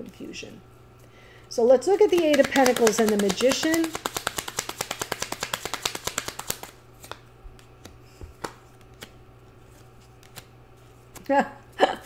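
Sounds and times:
cards being shuffled: 2.0 - 11.3.

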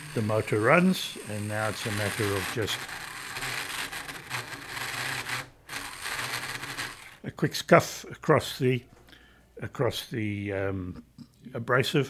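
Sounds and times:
small electric motor running: 0.0 - 7.2.

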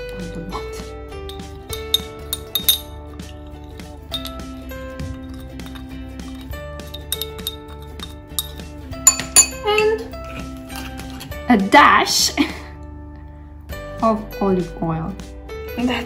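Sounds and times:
glass jar clinking on bowl: 0.0 - 11.3
background music: 0.0 - 16.0.

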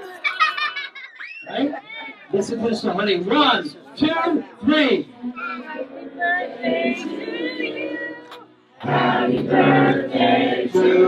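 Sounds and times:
background music: 4.8 - 11.0.

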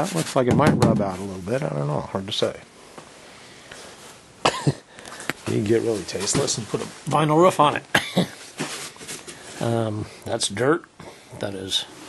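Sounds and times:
faint room hiss: 0.0 - 12.0
man coughing: 4.4 - 4.9, 7.9 - 8.4.

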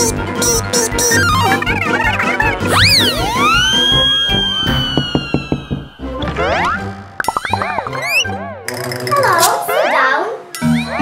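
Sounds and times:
playful children's music: 0.0 - 11.0
slide-whistle boings: 1.2 - 8.4
falling whistle glide: 2.7 - 5.7
warbling wobbling tones: 6.4 - 8.4.

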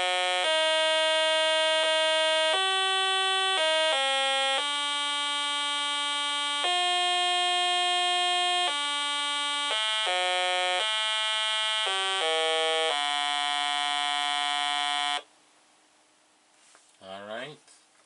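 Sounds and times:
buzzy electronic tune from speaker: 0.0 - 15.2.

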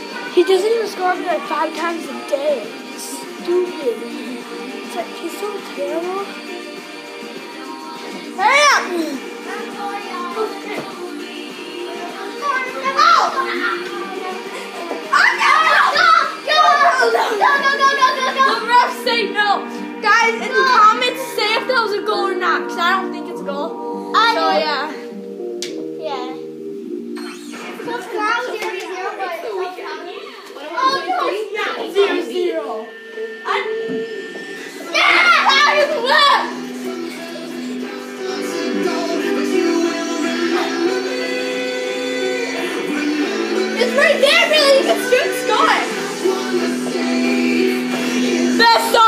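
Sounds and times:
background music: 0.0 - 49.0
child yelling: 8.4 - 9.2, 12.4 - 13.9, 15.1 - 22.0, 34.8 - 36.6, 43.8 - 45.9, 48.6 - 49.0.

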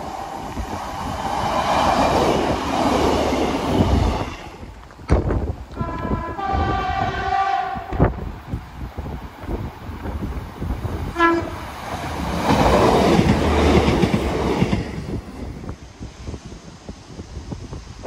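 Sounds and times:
train engine and wheel noise: 0.0 - 18.0
train two-tone horn: 5.7 - 8.1, 11.2 - 11.6.

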